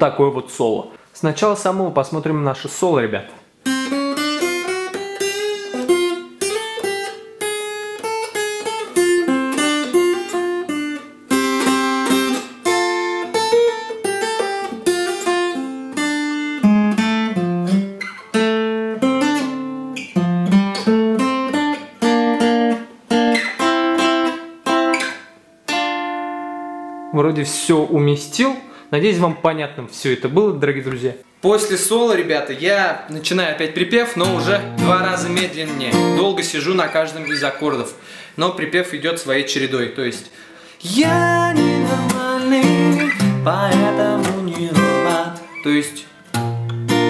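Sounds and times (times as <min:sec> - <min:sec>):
electro-acoustic guitar solo: 0:03.6 - 0:29.0, 0:33.7 - 0:38.0, 0:40.8 - 0:47.0.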